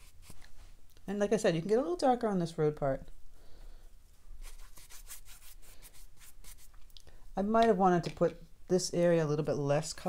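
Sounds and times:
paintbrush scratching on paper: 0:00.0 - 0:00.4, 0:04.4 - 0:06.8.

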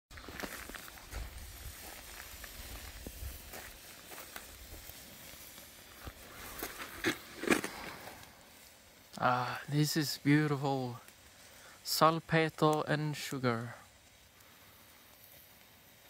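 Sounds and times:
mixture burning with hiss: 0:00.1 - 0:16.0
small crackles: 0:00.1 - 0:16.0.

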